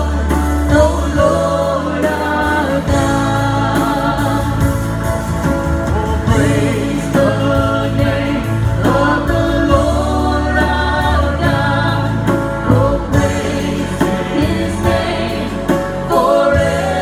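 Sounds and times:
acoustic guitar: 0:00.0 - 0:17.0
bass: 0:00.0 - 0:17.0
drums: 0:00.0 - 0:17.0
keyboard: 0:00.0 - 0:17.0
voices singing held notes: 0:00.0 - 0:17.0.

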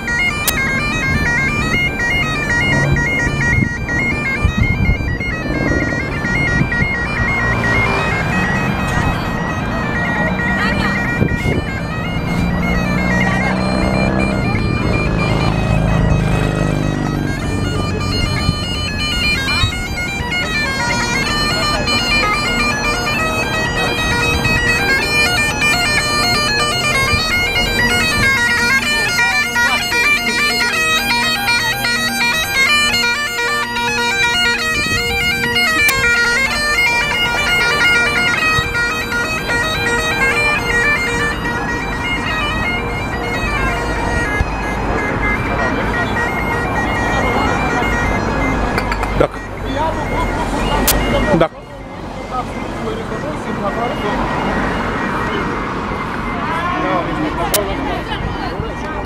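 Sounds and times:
bagpipes playing: 0:00.0 - 0:59.0
street traffic: 0:00.0 - 0:59.0
voices: 0:00.0 - 0:59.0.

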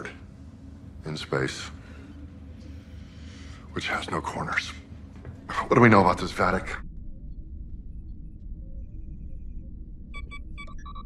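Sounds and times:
low steady hum: 0:00.0 - 0:11.0
computer interface beeps: 0:10.1 - 0:11.0.

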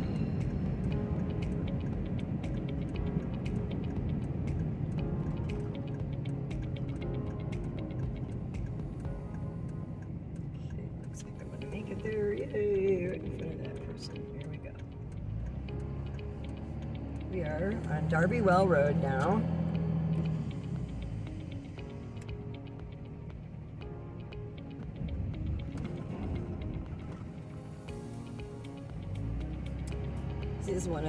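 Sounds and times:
road and engine rumble: 0:00.0 - 0:31.0.

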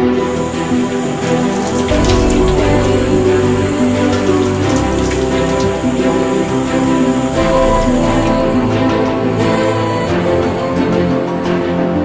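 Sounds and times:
orchestral sustained chords: 0:00.0 - 0:12.0
tap water splashing into basin: 0:00.3 - 0:09.8.

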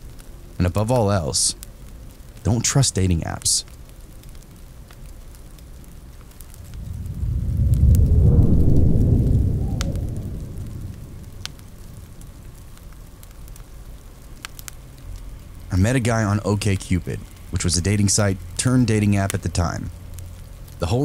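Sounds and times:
steady rain: 0:00.0 - 0:21.0
wood fire crackling: 0:00.0 - 0:21.0
thunder rumbling: 0:06.5 - 0:13.3.

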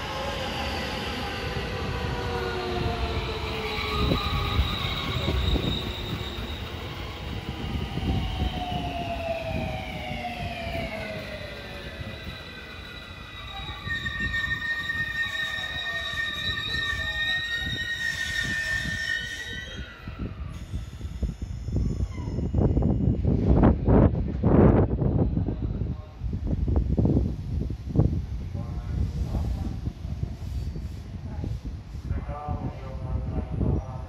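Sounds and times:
high brake squeal: 0:00.0 - 0:08.6, 0:10.2 - 0:23.3
electric train motor whine: 0:00.7 - 0:20.8.

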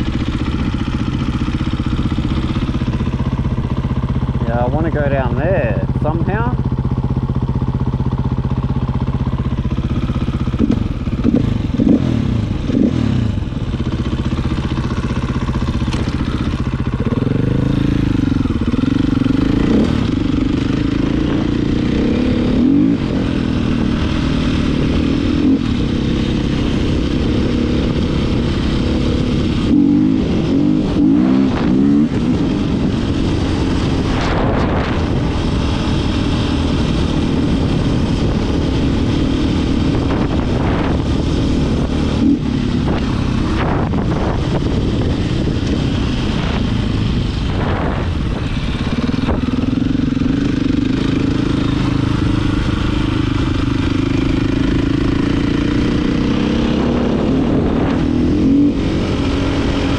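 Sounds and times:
dirt bike engine revving: 0:09.1 - 0:59.9.

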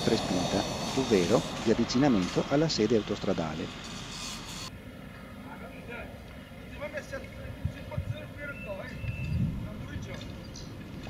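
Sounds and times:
distant motorway traffic rumble: 0:00.0 - 0:11.0.

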